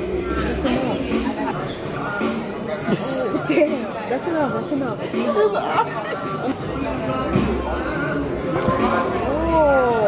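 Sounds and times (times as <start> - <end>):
diners chattering: 0.0 - 10.0
voices talking at a table: 0.0 - 10.0.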